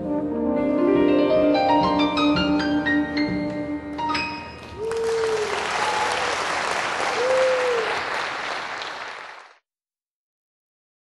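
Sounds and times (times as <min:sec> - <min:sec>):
audience applauding: 0:04.6 - 0:09.6.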